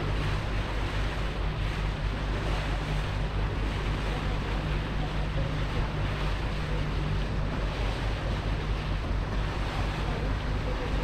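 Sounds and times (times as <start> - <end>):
boat engine rumble: 0.0 - 11.0
water rushing: 0.0 - 11.0.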